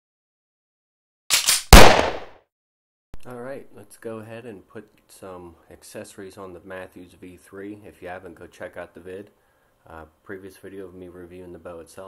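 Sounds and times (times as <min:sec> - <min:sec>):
gunshots: 0:01.3 - 0:02.4.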